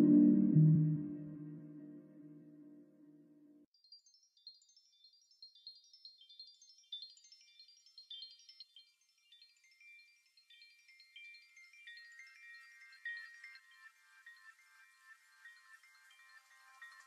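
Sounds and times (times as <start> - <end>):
faint tinkling chimes: 3.9 - 17.0.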